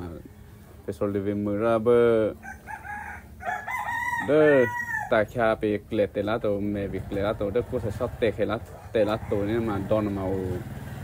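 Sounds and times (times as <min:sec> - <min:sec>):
man talking: 0:00.0 - 0:02.4, 0:04.2 - 0:10.7
rooster crowing: 0:02.4 - 0:05.3, 0:09.0 - 0:10.0.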